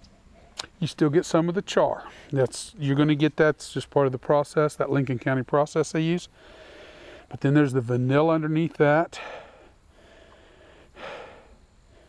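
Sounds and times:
man breathing through nose: 0:06.3 - 0:07.3, 0:09.2 - 0:12.0.

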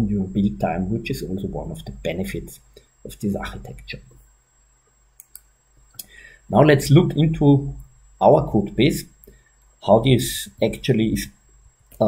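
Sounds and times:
computer mouse clicks: 0:05.2 - 0:06.1.

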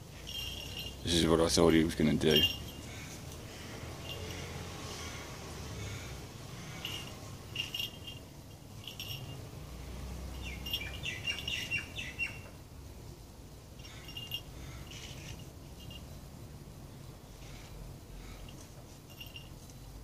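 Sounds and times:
small birds chirping: 0:00.0 - 0:16.3.

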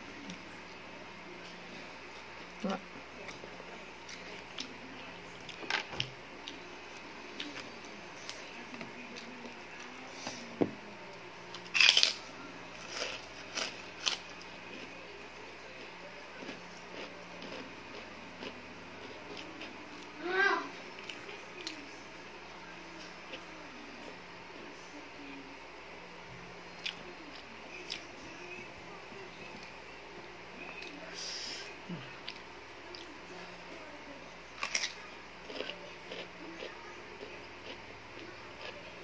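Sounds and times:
faint steady hum: 0:00.0 - 0:39.0.

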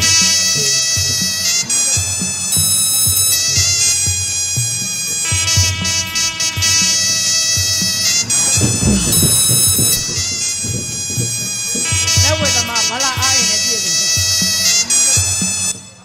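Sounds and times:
reedy shawm melody: 0:00.0 - 0:16.0
drum strokes: 0:07.7 - 0:14.5.

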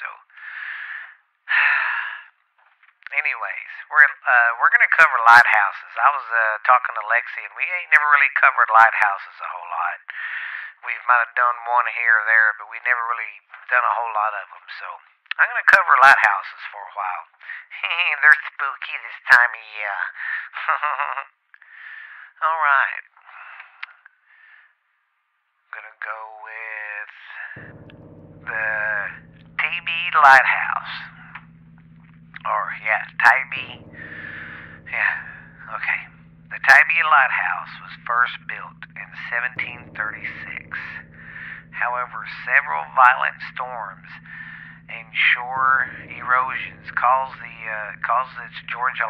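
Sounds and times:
person breathing heavily: 0:00.4 - 0:02.2.

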